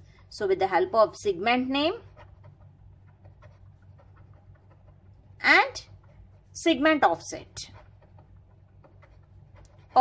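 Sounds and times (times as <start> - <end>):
low room hum: 0.0 - 10.0
person speaking: 0.3 - 2.3, 5.3 - 7.9
ballpoint pen writing on paper: 1.5 - 10.0.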